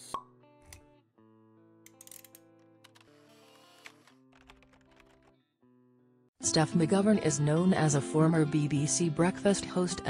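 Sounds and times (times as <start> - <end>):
background music of held notes: 6.4 - 10.0.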